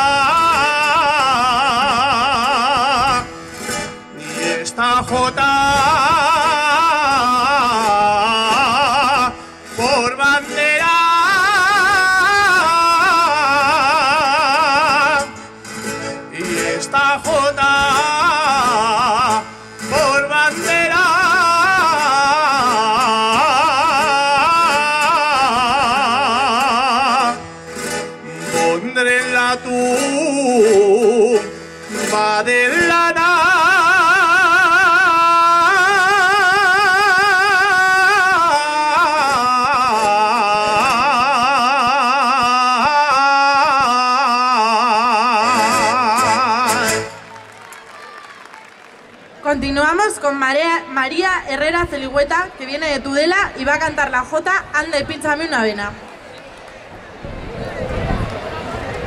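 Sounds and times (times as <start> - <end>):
man singing with vibrato: 0.0 - 47.4
plucked string accompaniment: 0.0 - 48.3
guitar: 0.0 - 59.0.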